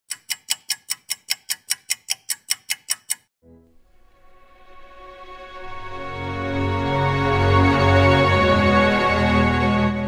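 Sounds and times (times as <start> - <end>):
rapid ticking: 0.1 - 3.3
soft music with low held tone: 3.4 - 10.0.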